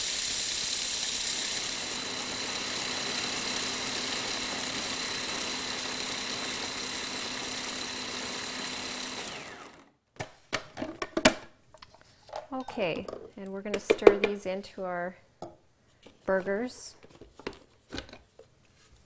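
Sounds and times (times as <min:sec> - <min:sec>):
food processor motor grinding seeds: 0:00.0 - 0:10.0.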